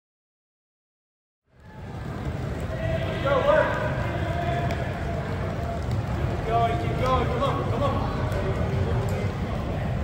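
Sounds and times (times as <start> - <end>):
soccer balls dribbled on turf: 1.6 - 10.0.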